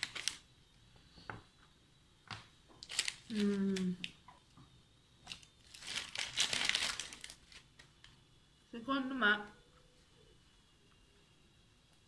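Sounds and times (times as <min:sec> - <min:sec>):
wrapper crinkling: 0:00.0 - 0:00.5, 0:02.8 - 0:04.2, 0:05.2 - 0:08.2.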